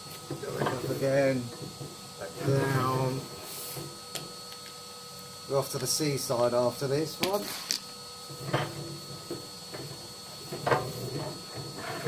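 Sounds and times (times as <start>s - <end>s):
vacuum cleaner hum: 0.0s - 12.0s
rods scraping and knocking in flue: 7.2s - 12.0s.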